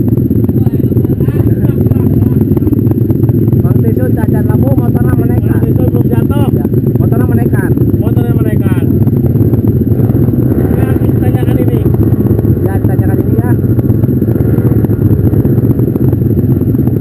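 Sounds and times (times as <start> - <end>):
motorcycle engines idling: 0.0 - 17.0
riders calling out: 0.4 - 3.6.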